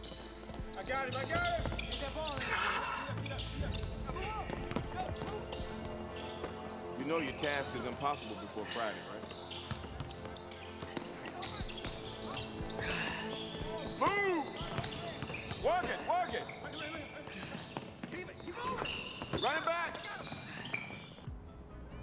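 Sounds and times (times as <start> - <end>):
basketball bouncing: 0.0 - 2.5, 3.2 - 6.6, 9.3 - 12.4, 13.7 - 16.6
sneakers squeaking: 0.0 - 21.4.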